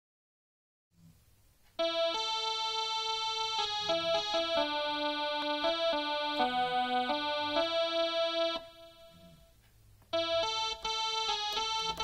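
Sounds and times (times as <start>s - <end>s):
mini keyboard slow melody: 1.6s - 12.0s.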